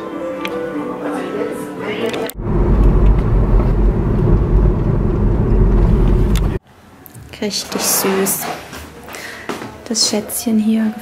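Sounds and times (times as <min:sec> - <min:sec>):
road traffic rumble: 0:02.3 - 0:06.6.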